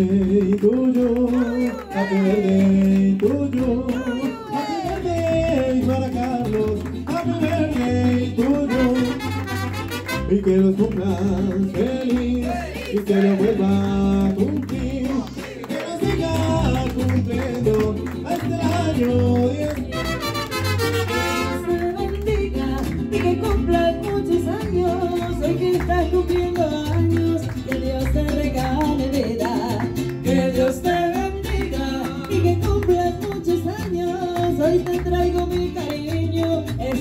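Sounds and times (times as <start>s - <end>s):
mariachi band playing: 0.0s - 37.0s.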